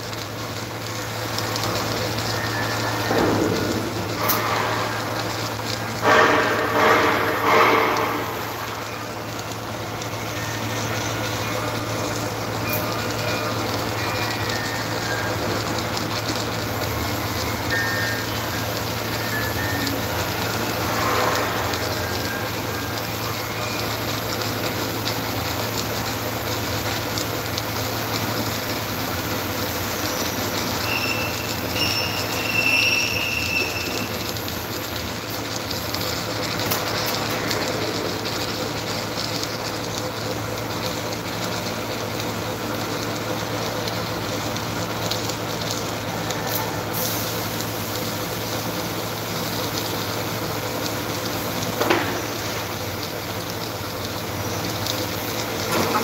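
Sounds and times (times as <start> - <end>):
welding machine hum: 0.0 - 56.0.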